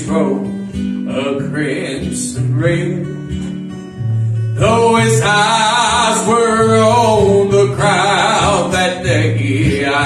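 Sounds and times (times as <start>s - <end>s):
man singing gospel song: 0.0s - 3.1s, 4.6s - 10.0s
acoustic guitar: 0.0s - 10.0s.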